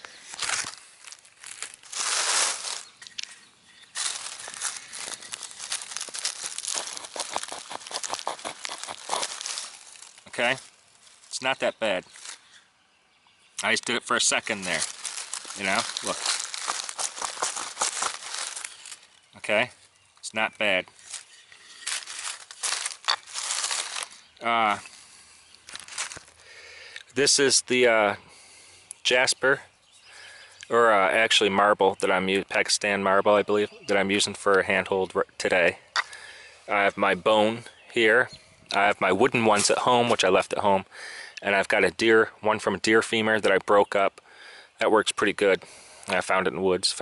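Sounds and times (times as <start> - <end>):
flint scraping wood: 0.0 - 11.4, 12.1 - 12.7, 14.4 - 19.3, 20.9 - 26.4
rustling in dry leaves: 0.0 - 12.6, 13.8 - 20.0, 20.9 - 26.6.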